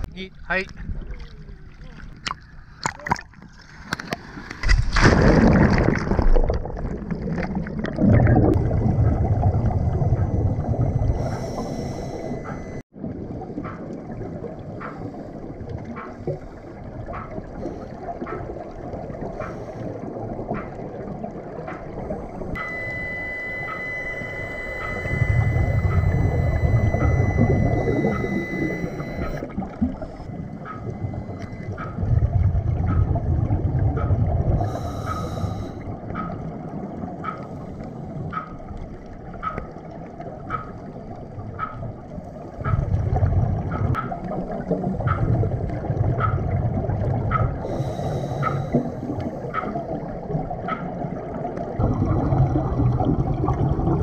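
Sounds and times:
exhaled bubbles rumbling: 0:00.7 - 0:37.3, 0:38.1 - 0:47.8, 0:48.7 - 0:54.0
diver breathing through regulator: 0:11.1 - 0:12.8, 0:34.6 - 0:35.9, 0:47.6 - 0:49.5
faint even ticking: 0:22.6 - 0:32.0.

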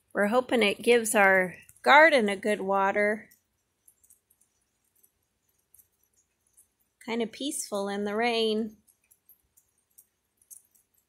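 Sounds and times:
faint rain patter: 0:00.0 - 0:11.0.

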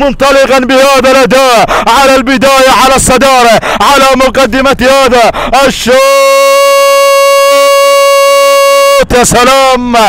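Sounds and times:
man calling a long vowel: 0:00.0 - 0:10.0.

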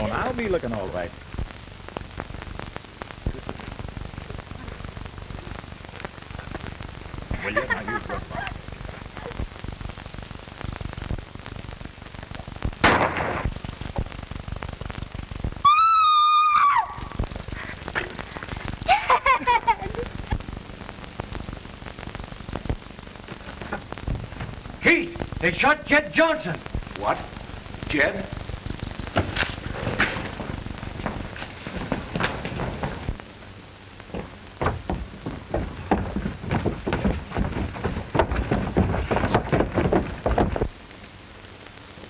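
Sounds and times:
film soundtrack crackle and hiss: 0:00.0 - 0:42.0
gunshot: 0:12.8 - 0:13.5.

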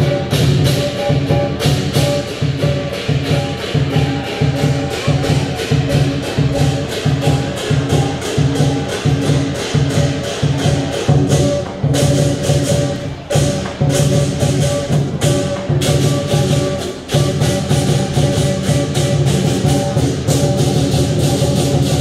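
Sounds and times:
cymbals crashing: 0:00.0 - 0:22.0
drum beating fast rhythm: 0:00.0 - 0:22.0.

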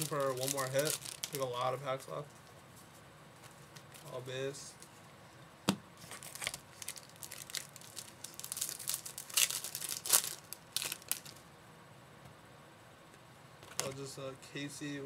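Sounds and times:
plastic wrapper tearing and crinkling: 0:00.0 - 0:01.6, 0:06.0 - 0:11.4.

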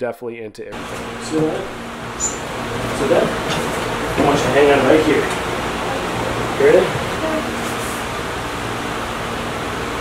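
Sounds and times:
steady background hiss: 0:00.8 - 0:10.0.

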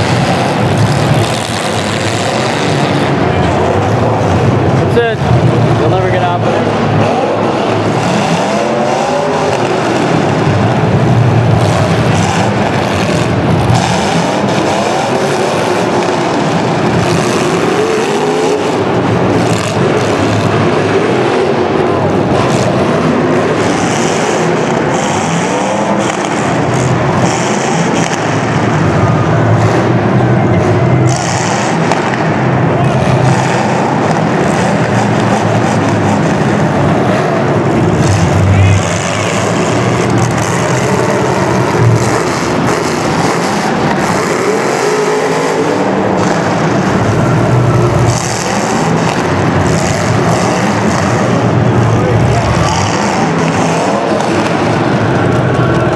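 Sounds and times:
car engines running loudly: 0:00.0 - 0:55.9.

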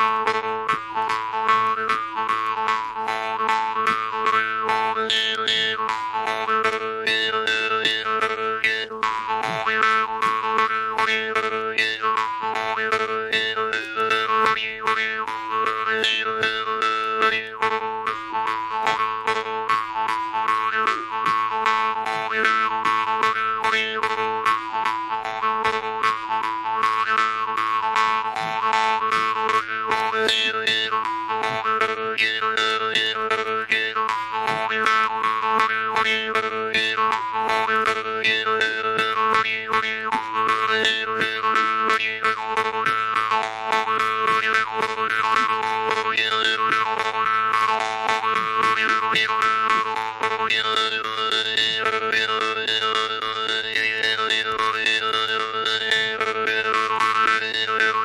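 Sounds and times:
jew's harp melody: 0:00.0 - 0:58.0.

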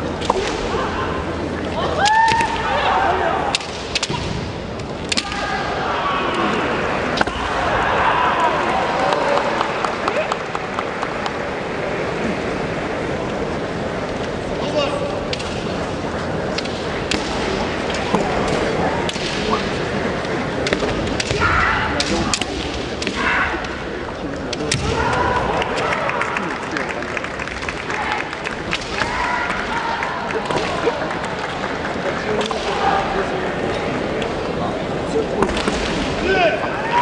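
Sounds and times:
large hall noise: 0:00.0 - 0:37.0
bamboo swords clacking: 0:03.5 - 0:05.6, 0:16.5 - 0:25.2.

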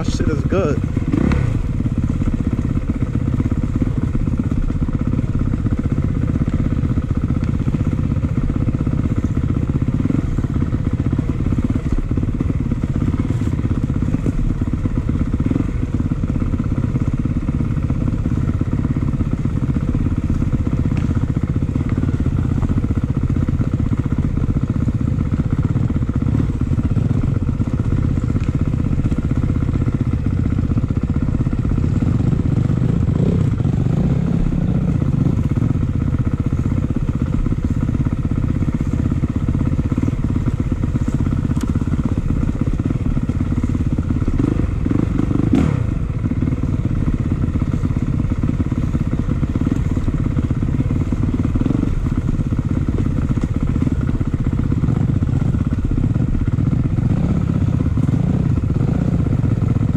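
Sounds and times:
dirt bike engine running: 0:00.0 - 0:59.9.

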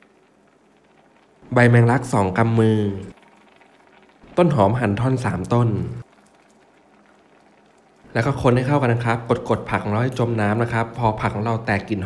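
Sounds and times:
broth simmering with faint bubbling: 0:00.0 - 0:12.0.

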